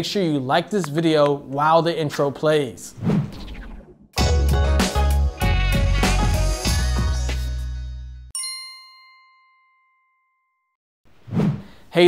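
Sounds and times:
intro music beat: 0:04.2 - 0:07.8
bright chime: 0:08.4 - 0:10.6.

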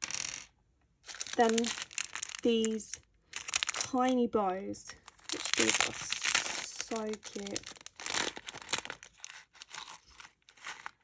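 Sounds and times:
plastic packets crinkling: 0:01.0 - 0:04.2, 0:04.9 - 0:11.0
small hard pieces clicking: 0:01.1 - 0:03.9, 0:05.0 - 0:11.0.

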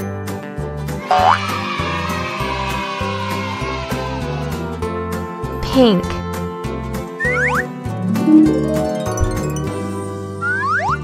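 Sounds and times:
cheerful background music: 0:00.0 - 0:11.0
cartoon sliding tone effect: 0:01.1 - 0:01.5.

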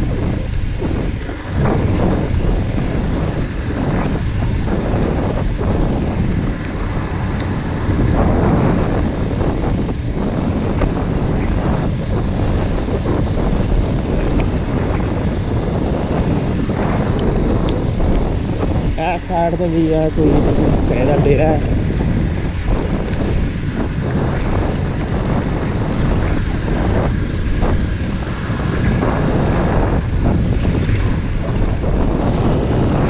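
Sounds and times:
motorcycle engine cruising: 0:00.0 - 0:33.0
wind rushing on microphone: 0:00.0 - 0:33.0.

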